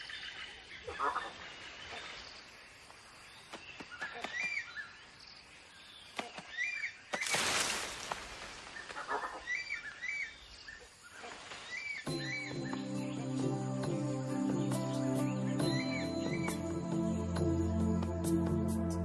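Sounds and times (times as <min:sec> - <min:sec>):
bird chirping: 0:08.7 - 0:19.0
soft background music: 0:12.1 - 0:19.0.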